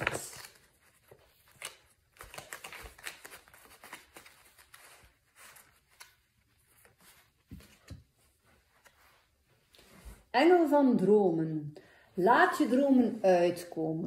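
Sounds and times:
cards being shuffled: 0.0s - 9.2s.

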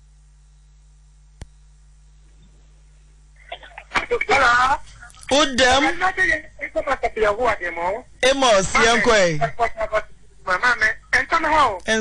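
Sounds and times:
person talking over telephone: 3.5s - 12.0s.

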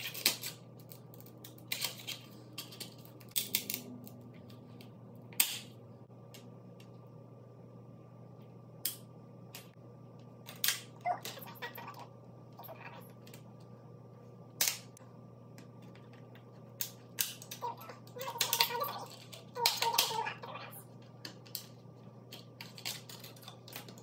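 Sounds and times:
faint steady hum: 0.0s - 24.0s
plastic palettes clicking on stone: 22.3s - 24.0s.

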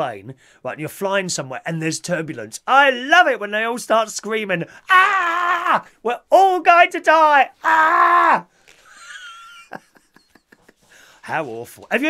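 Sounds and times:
man laughing wheezily: 8.8s - 11.2s.

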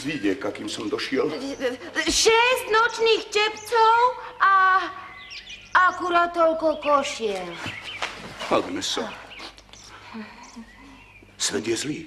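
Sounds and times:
faint bird chirping: 0.0s - 12.0s.

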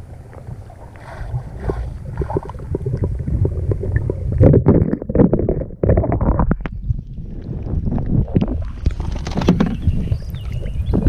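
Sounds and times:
low rumble: 0.0s - 11.0s
muffled water sloshing: 0.0s - 11.0s
water splashing: 0.0s - 11.0s.

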